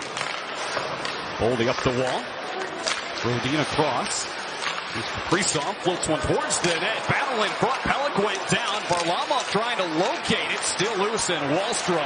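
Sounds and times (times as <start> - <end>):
sports commentator speaking: 3.2 - 4.3, 4.9 - 12.0.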